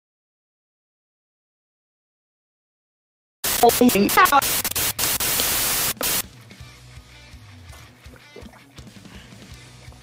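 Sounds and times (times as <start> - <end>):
loud hissing static: 3.4 - 6.2
garbled voice: 3.5 - 4.8.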